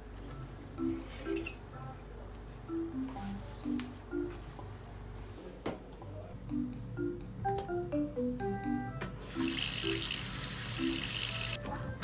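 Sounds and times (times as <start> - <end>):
soft mallet instrument music: 6.4 - 9.0
tap water running into sink: 9.4 - 11.6.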